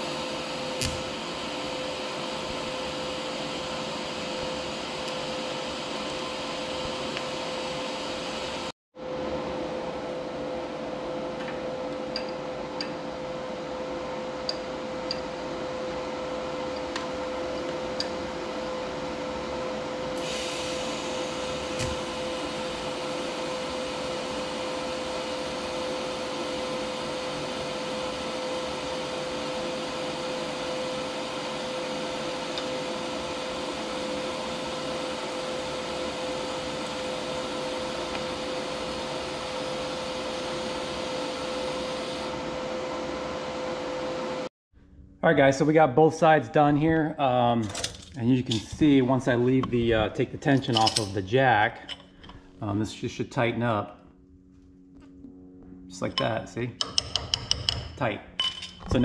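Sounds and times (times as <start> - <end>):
welding arc hissing: 0.0 - 8.7, 20.2 - 25.6
steady machine hum: 0.0 - 59.0.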